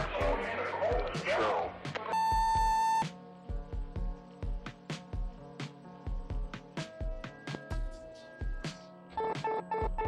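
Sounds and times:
background music with a beat: 0.0 - 10.0
answering machine beep: 2.1 - 3.1.

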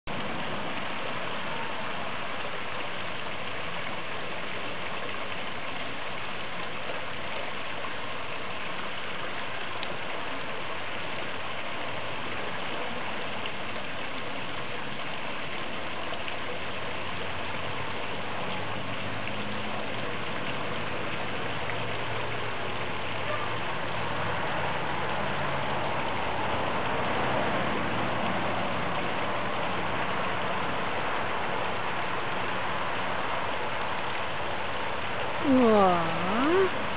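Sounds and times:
falling water rushing: 0.1 - 36.9.

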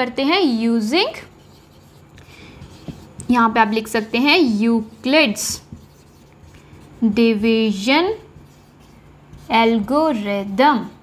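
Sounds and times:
marker scratching on whiteboard: 0.9 - 11.0
marker tap: 2.2 - 3.5, 5.4 - 6.6.

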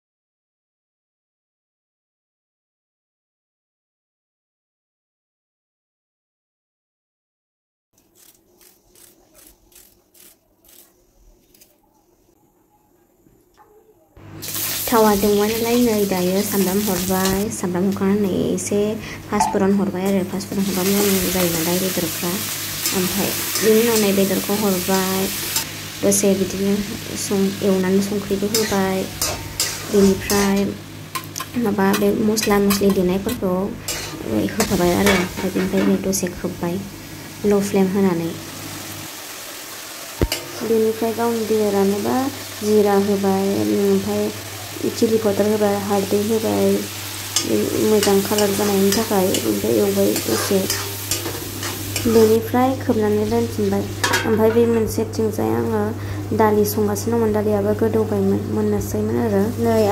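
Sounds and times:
chicken sizzling in oil: 14.4 - 17.5, 20.5 - 33.0, 36.8 - 54.4
person talking: 14.8 - 25.3, 26.0 - 29.2, 29.9 - 30.8, 31.5 - 38.4, 40.6 - 50.8, 52.0 - 59.9
metal spatula scraping a pan: 28.4 - 33.0, 33.8 - 36.0, 47.3 - 52.2.

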